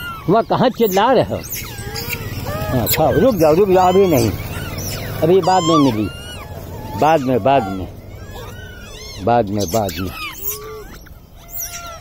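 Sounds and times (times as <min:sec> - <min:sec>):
monkey coos: 0:00.0 - 0:12.0
monkeys squeaking and chirping: 0:00.0 - 0:12.0.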